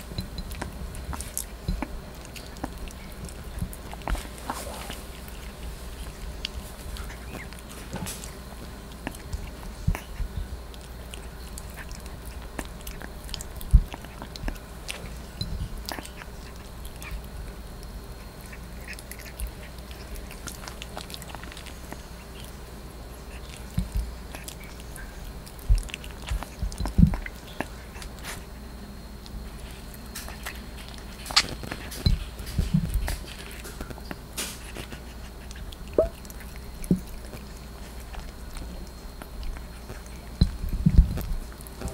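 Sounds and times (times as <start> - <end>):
puppy chewing meat: 0.0 - 41.9.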